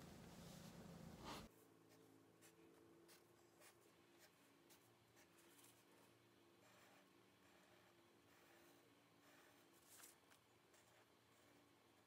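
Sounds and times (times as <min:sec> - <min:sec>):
faint steady hum: 0:00.0 - 0:12.0
marker drawing on paper: 0:01.2 - 0:12.0.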